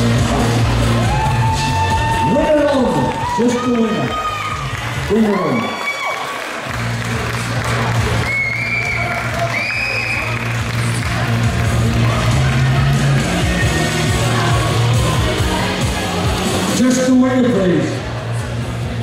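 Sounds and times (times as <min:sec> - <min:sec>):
music over hall speakers: 0:00.0 - 0:19.0
high rising crowd calls: 0:00.5 - 0:06.8, 0:07.6 - 0:17.0
audience cheering: 0:00.8 - 0:13.3.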